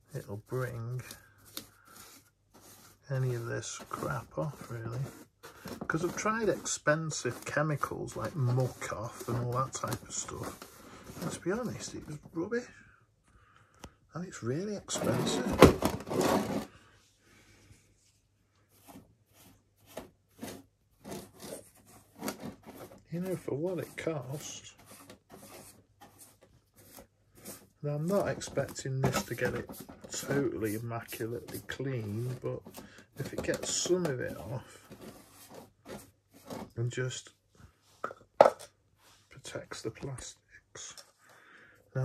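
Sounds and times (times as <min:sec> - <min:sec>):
brush scrubbing plastic: 0:00.0 - 0:12.2, 0:18.7 - 0:36.8.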